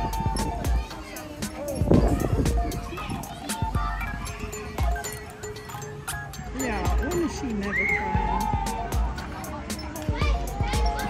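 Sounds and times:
young child crying: 0.0s - 4.9s, 7.6s - 9.0s
background music: 0.0s - 11.0s.

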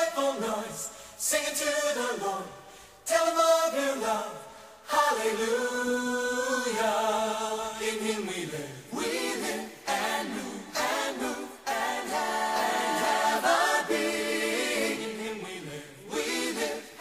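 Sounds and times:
choir singing: 0.0s - 17.0s.

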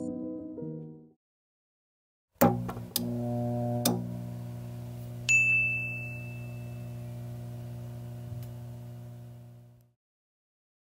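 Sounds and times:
bright bell-like ding: 5.3s - 7.1s.

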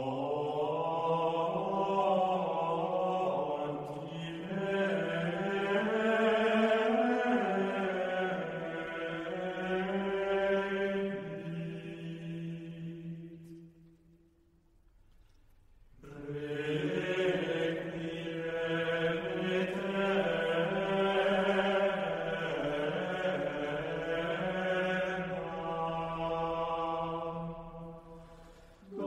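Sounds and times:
unaccompanied choir singing: 0.0s - 13.6s, 16.0s - 29.0s.

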